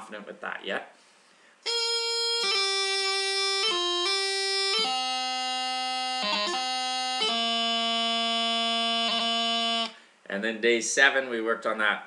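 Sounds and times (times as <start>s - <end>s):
bagpipe chanter long note: 1.7s - 10.0s.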